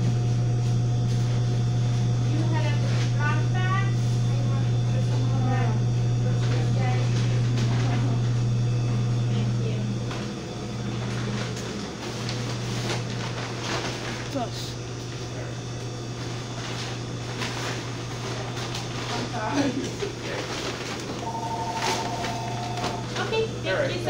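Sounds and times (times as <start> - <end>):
low machinery hum: 0.0 - 24.0.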